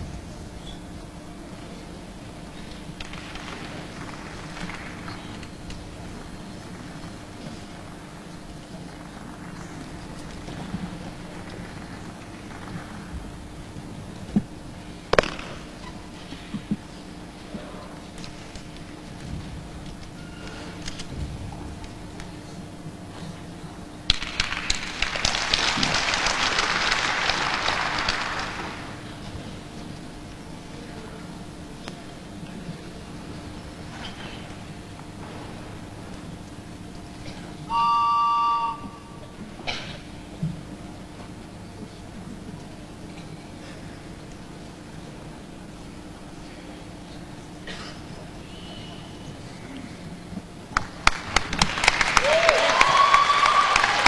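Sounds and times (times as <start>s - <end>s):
audience applauding: 3.0s - 5.6s, 24.1s - 29.1s, 50.8s - 54.0s.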